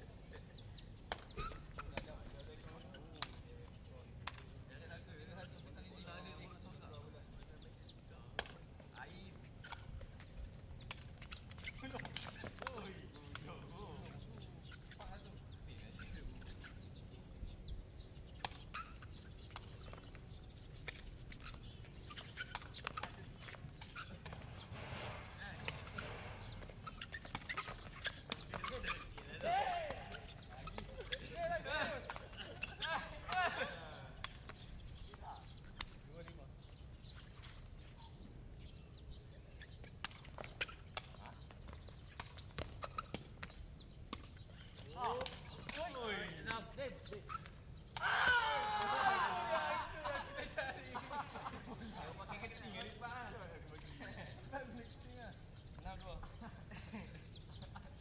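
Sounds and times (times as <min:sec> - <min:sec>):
players calling out: 0:22.3 - 0:34.2, 0:47.2 - 0:53.4.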